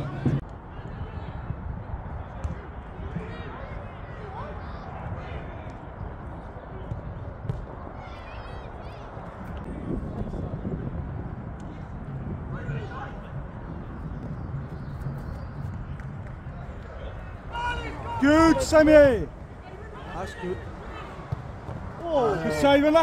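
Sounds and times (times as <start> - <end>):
wind rumble on microphone: 0.0 - 23.0
distant shouts from players: 16.6 - 23.0.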